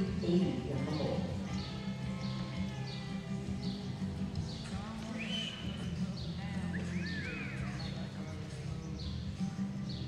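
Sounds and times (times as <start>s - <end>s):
horse hooves on soft dirt: 0.0s - 10.0s.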